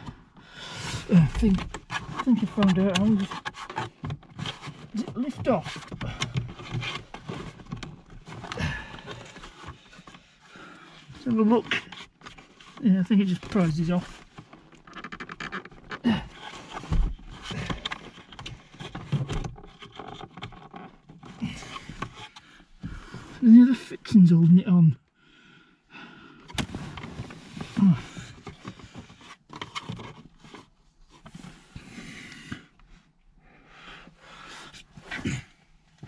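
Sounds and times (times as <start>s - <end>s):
tool scraping plastic trim: 1.3s - 9.8s.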